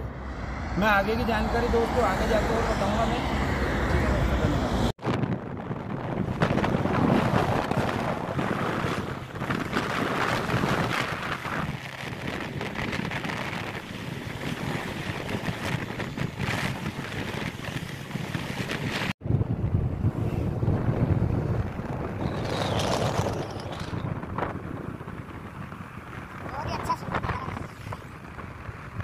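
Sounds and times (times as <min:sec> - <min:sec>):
lorry passing rumble: 0:00.0 - 0:04.9
wind rushing over microphone: 0:00.0 - 0:29.0.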